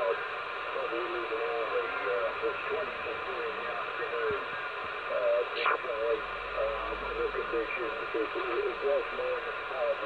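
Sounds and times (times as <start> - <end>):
voice over radio speaker: 0.0 - 4.5, 5.1 - 10.0
burst of radio noise: 0.0 - 10.0
radio band hiss: 0.0 - 10.0.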